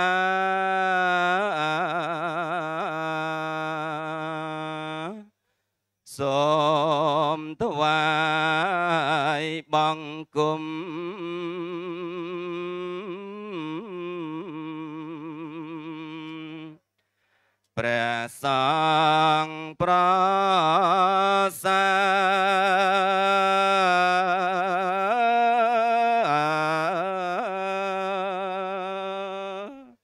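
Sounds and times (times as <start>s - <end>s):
man chanting: 0.0s - 5.3s, 6.1s - 16.8s, 17.8s - 30.0s.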